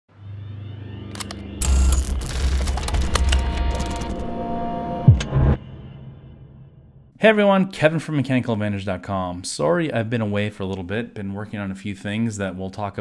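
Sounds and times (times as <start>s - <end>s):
low hum: 0.1s - 7.1s
clicks: 1.1s - 4.2s.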